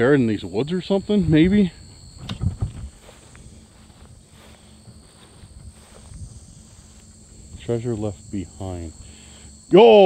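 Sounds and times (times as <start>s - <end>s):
insects chirring: 0.0s - 10.0s
footsteps through tall grass: 1.8s - 8.2s.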